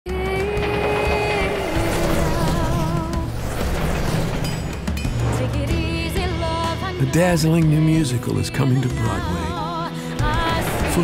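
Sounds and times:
low rumble of moving train: 0.1 - 7.1, 9.2 - 11.0.

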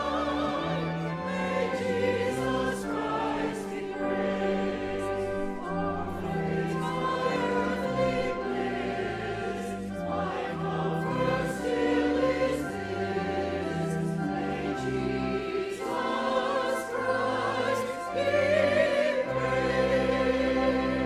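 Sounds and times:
church choir singing: 0.0 - 21.0
held accompaniment notes: 0.0 - 21.0.

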